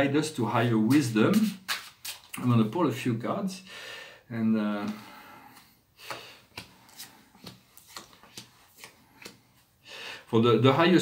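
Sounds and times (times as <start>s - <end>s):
cards clicking and rustling: 6.5s - 9.6s.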